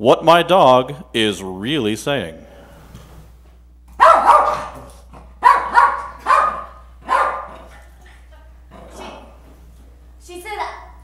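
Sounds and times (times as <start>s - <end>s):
small dog barking: 4.0s - 7.7s.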